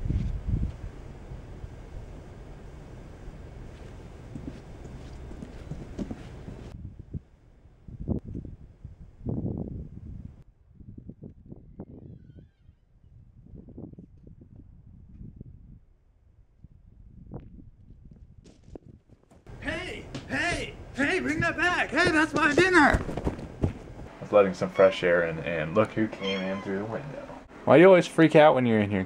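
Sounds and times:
faint footsteps: 3.5s - 6.8s, 18.1s - 27.4s
boot footsteps on concrete: 3.7s - 6.8s, 21.3s - 24.1s
outdoor air hiss: 19.5s - 29.0s
brief rising squeak: 26.1s - 26.9s.

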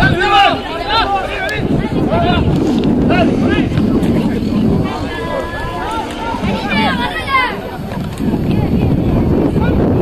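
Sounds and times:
people shouting: 0.0s - 8.0s
wind rumble on microphone: 0.0s - 10.0s.

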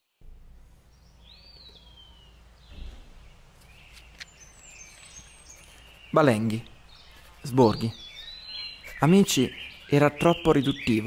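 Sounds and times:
faint bird chirps: 0.0s - 11.0s
low thump: 2.7s - 3.3s.

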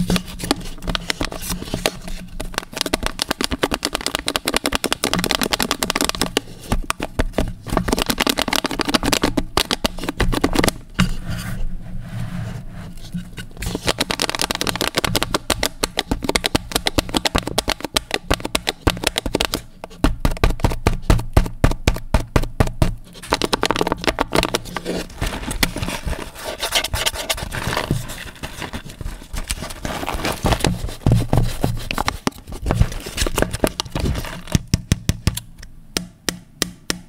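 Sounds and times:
fingernails tapping plastic cup: 13.7s - 24.6s.

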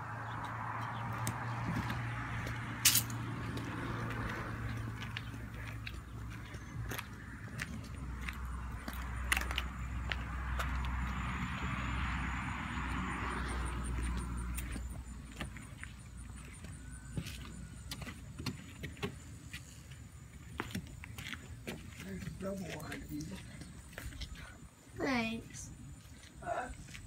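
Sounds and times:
road vehicle passing: 0.0s - 27.0s
footsteps clicks and rustles: 0.3s - 11.1s, 13.9s - 24.8s, 25.4s - 27.0s.

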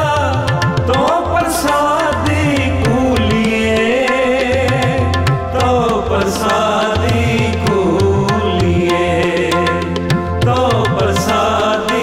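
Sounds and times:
harmonium chords: 0.0s - 12.0s
person singing: 0.0s - 12.0s.

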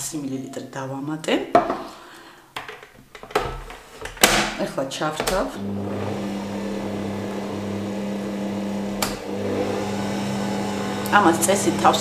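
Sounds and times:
stand mixer motor humming: 5.6s - 12.0s.

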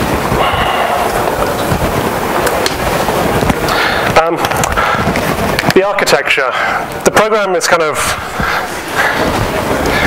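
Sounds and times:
microphone crackling and rumbling: 0.0s - 10.0s.

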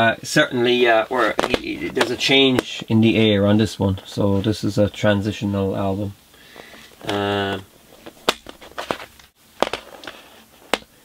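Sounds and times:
plastic cases clicking: 1.2s - 2.8s, 6.6s - 10.9s.

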